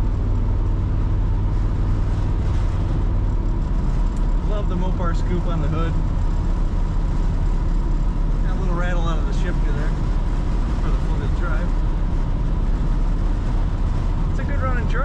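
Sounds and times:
engine and road rumble in cab: 0.0 - 15.0.

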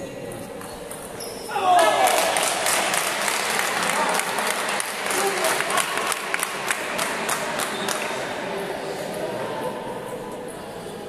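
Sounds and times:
spectators clapping: 1.7 - 8.3.

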